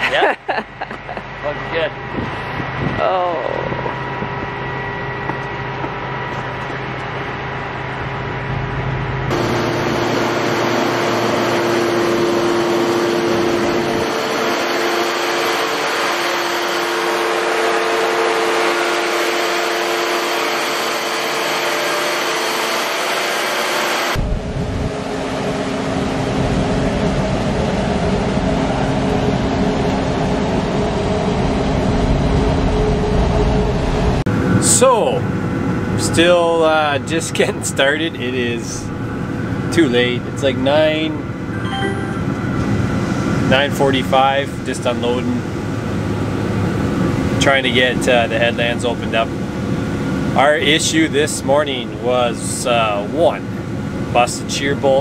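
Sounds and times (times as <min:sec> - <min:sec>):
mechanical hum tones: 0:00.0 - 0:55.0
grain-handling machinery running: 0:01.1 - 0:24.0.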